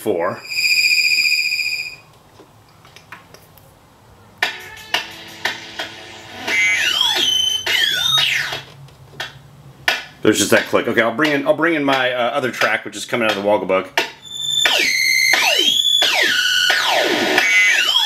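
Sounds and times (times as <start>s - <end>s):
swooping synth tones: 4.4s - 8.7s, 14.2s - 18.0s
sequenced drum track: 4.4s - 18.0s.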